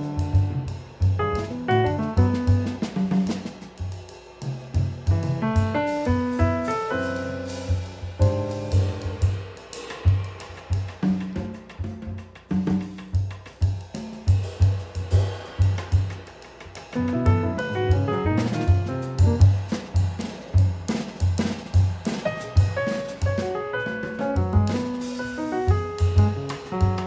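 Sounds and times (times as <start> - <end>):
jazz drum kit played with sticks: 0.0 - 27.0
grand piano notes: 17.0 - 19.4.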